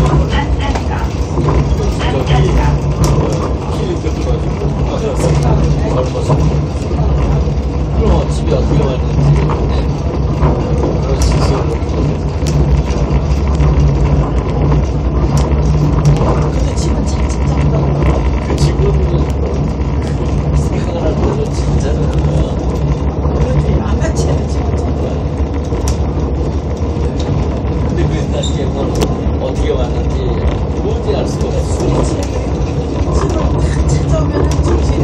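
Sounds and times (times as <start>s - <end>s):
diesel engine drone: 0.0s - 35.0s
train running rumble: 0.0s - 35.0s
wheel clicks on track: 0.0s - 35.0s.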